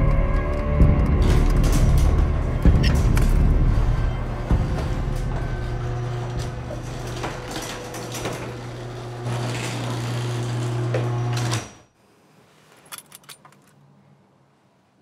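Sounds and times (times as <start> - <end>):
garage door opener running: 0.8 - 11.9
door rattling along track: 1.0 - 11.8.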